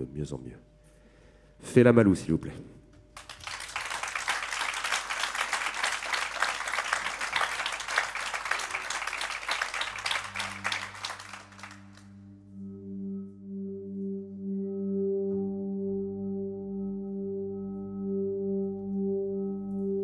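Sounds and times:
audience applause: 3.2 - 12.2
low pulsing musical drone: 7.2 - 20.0.

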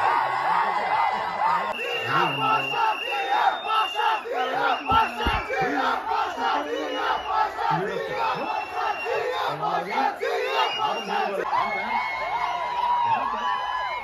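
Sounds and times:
crowd yelling and cheering: 0.0 - 14.0.

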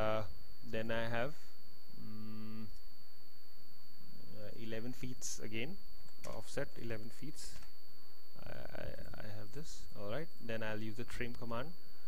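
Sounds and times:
high electrical whine: 0.0 - 12.0
man humming hesitantly: 2.0 - 2.8.

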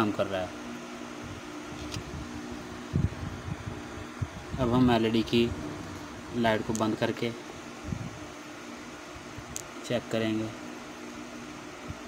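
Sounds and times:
machine hum with two low tones: 0.0 - 12.0.

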